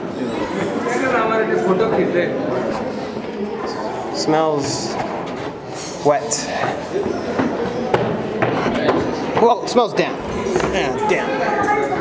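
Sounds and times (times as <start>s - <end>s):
faint voices in stone passage: 0.0s - 12.0s.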